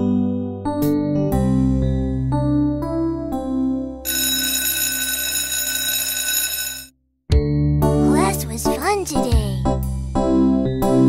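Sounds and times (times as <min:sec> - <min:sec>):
electric school bell ringing: 0:04.1 - 0:06.9.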